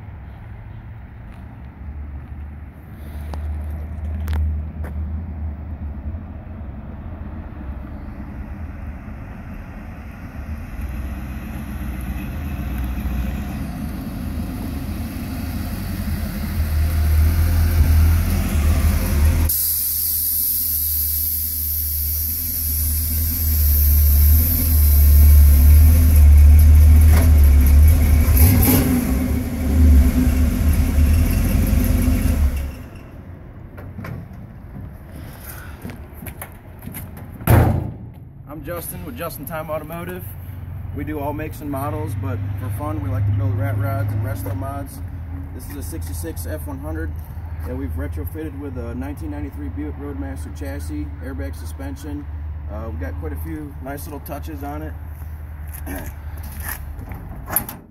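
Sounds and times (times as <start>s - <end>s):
truck engine exhaust rumble: 7.1s - 49.6s.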